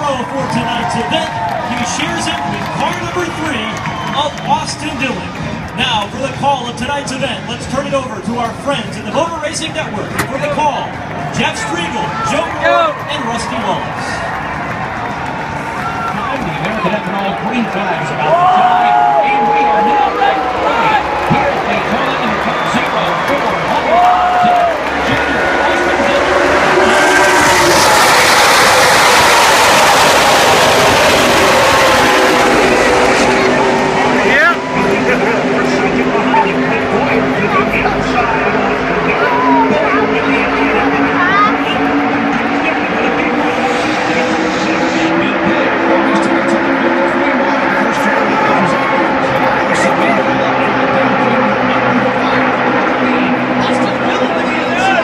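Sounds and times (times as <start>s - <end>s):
crowd cheering and shouting: 0.0s - 55.0s
race cars passing: 0.0s - 55.0s.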